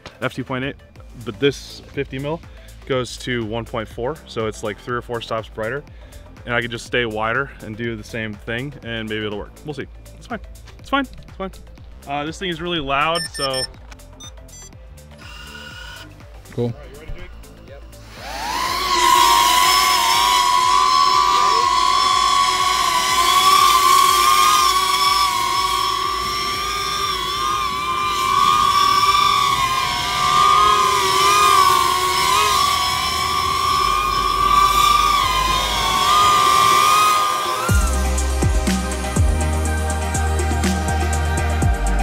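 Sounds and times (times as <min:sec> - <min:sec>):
drone propellers whining: 0:11.5 - 0:42.0.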